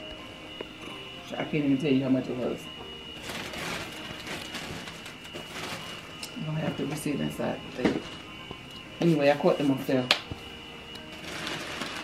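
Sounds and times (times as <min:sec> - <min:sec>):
packaging rustling: 0:03.1 - 0:06.3, 0:11.0 - 0:12.0.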